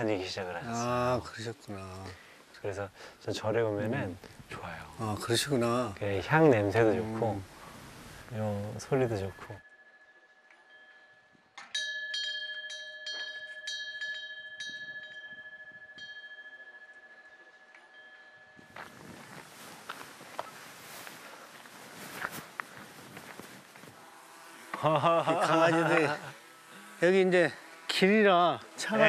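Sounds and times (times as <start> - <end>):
wind bell ringing: 8.8 - 19.8.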